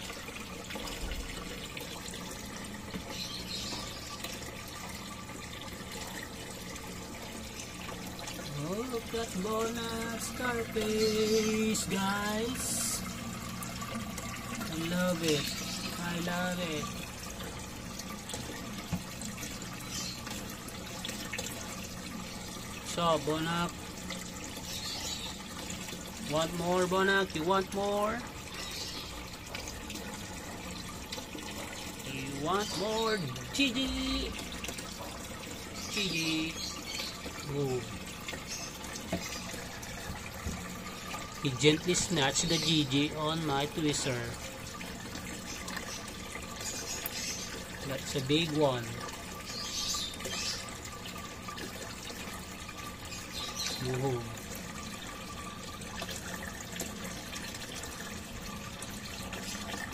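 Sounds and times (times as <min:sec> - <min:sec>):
water trickling: 0:00.0 - 0:59.9.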